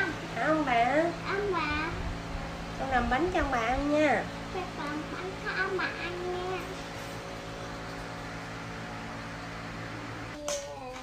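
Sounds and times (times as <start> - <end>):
steady mechanical hum: 0.0 - 11.0.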